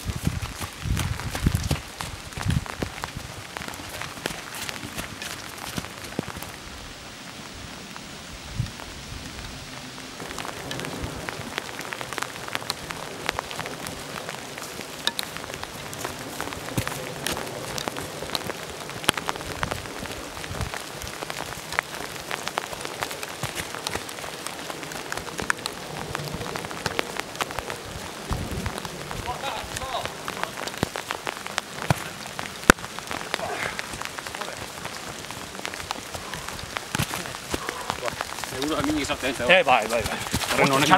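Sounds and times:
raindrop clicks: 0.0s - 6.6s, 10.2s - 40.9s
rain falling: 0.0s - 40.9s.

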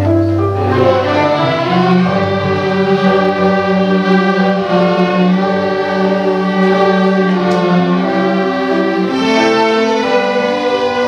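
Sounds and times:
string orchestra playing held notes: 0.0s - 11.0s.

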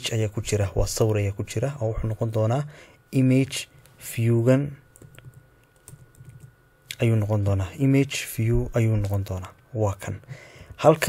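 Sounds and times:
thin steady background whine: 0.0s - 11.0s
keyboard keys clicking: 5.0s - 6.5s.

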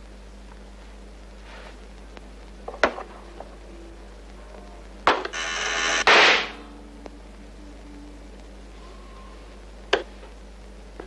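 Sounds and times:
harsh buzzing into rushing blast: 5.3s - 6.7s.

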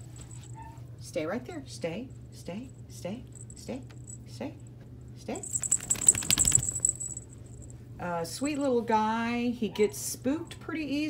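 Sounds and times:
collar bell jingling: 3.3s - 4.3s, 5.4s - 7.9s.

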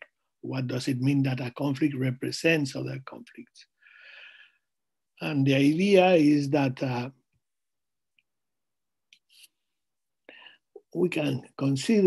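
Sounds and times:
man's voice: 0.5s - 3.5s, 5.2s - 7.1s, 10.9s - 12.0s.

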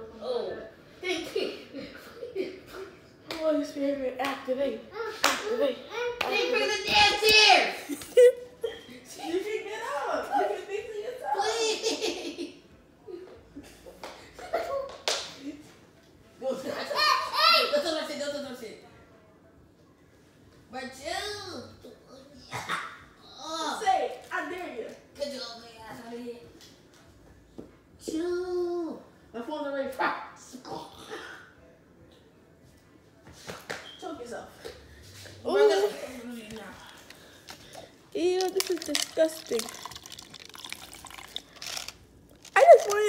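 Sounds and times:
sharp hand claps: 14.9s - 15.4s.

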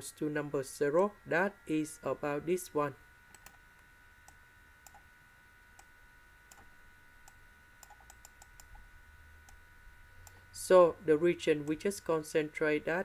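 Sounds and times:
computer mouse clicks: 3.3s - 3.6s, 4.2s - 5.0s, 6.5s - 8.8s.

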